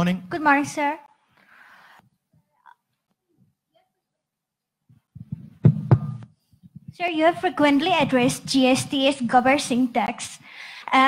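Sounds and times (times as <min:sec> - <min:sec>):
microphone handling thumps: 0:04.9 - 0:07.0
sharp knocks on microphone: 0:05.2 - 0:07.0.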